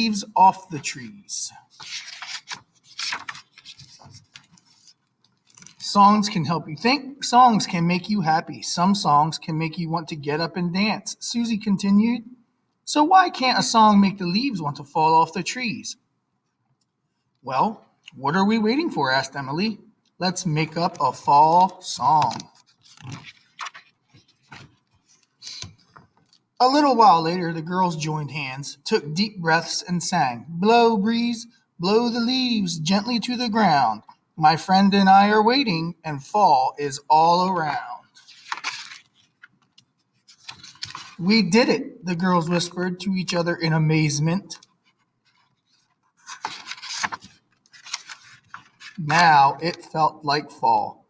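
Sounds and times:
book page turning rustle: 0:01.7 - 0:05.9, 0:20.6 - 0:26.5, 0:38.1 - 0:41.2, 0:44.6 - 0:49.3.

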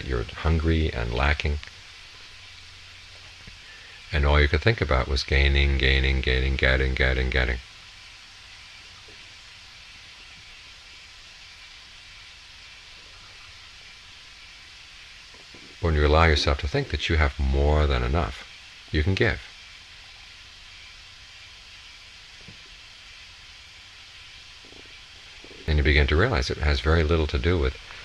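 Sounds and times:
recording hiss: 0:00.0 - 0:28.0.

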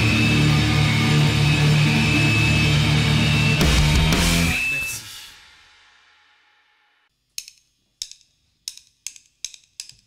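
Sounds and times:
band music: 0:03.1 - 0:05.3
drumstick clicks: 0:07.4 - 0:10.0.

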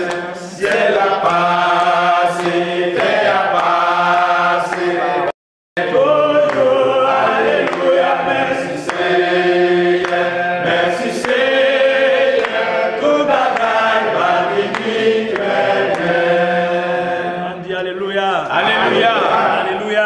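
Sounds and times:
congregation singing: 0:00.0 - 0:20.0.

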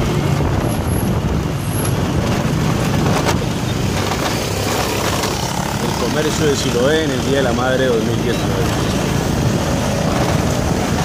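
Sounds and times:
vehicle engine and road noise: 0:00.0 - 0:11.0.

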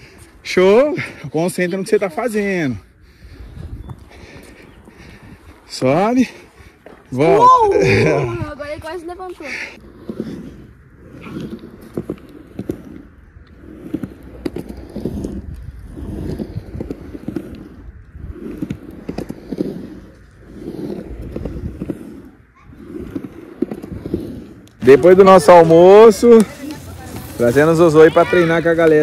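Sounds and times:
skateboard wheels rolling on concrete: 0:00.0 - 0:29.0.

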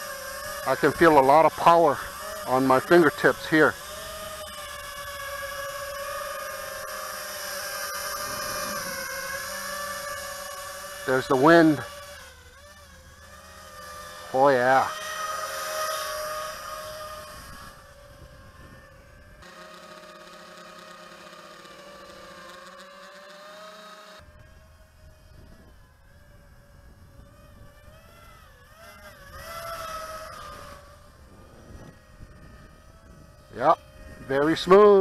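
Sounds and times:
quadcopter buzzing whine: 0:00.0 - 0:35.0.

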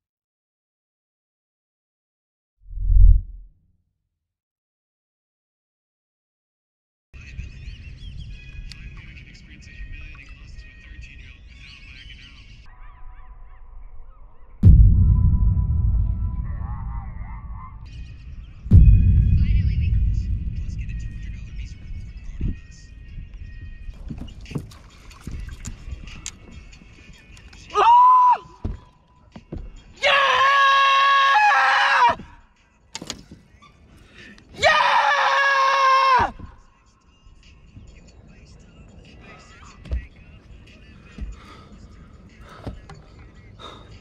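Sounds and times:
birds chirping: 0:07.2 - 0:14.6, 0:17.2 - 0:19.2, 0:20.0 - 0:27.7, 0:32.8 - 0:34.5, 0:36.4 - 0:44.0
steady hum: 0:14.6 - 0:22.8.

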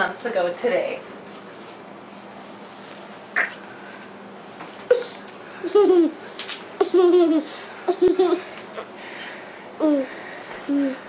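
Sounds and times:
toddler giggling: 0:04.9 - 0:06.2, 0:06.8 - 0:08.9.

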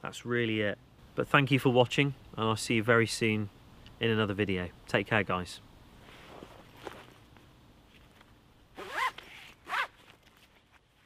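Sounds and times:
faint rustling of gear: 0:06.0 - 0:11.0
zip pulled quickly: 0:08.8 - 0:10.2.

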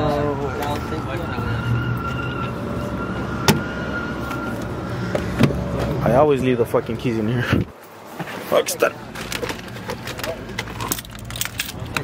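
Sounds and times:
keys jangling: 0:10.7 - 0:12.0.

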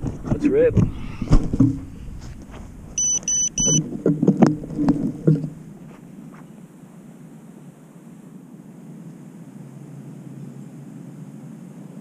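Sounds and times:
short high electronic beeps: 0:03.0 - 0:03.8.

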